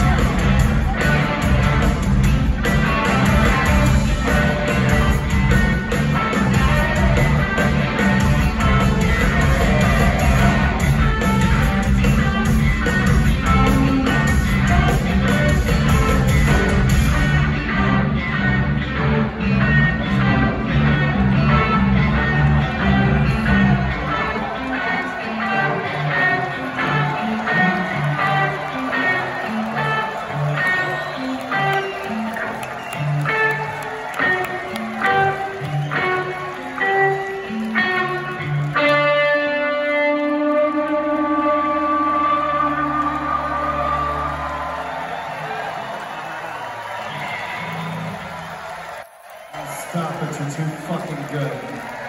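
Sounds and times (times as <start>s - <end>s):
live rock band playing: 0.0s - 48.5s
crowd noise: 0.0s - 52.0s.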